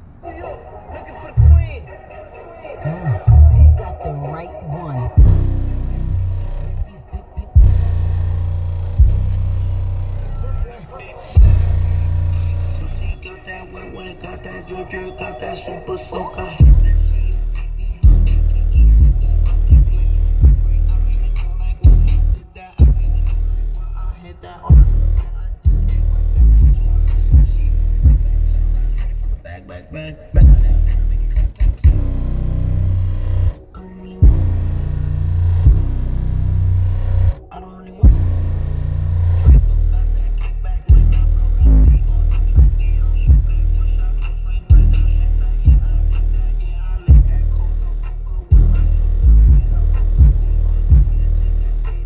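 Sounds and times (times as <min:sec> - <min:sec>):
bass-heavy rap music on subwoofer: 0:00.2 - 0:52.0.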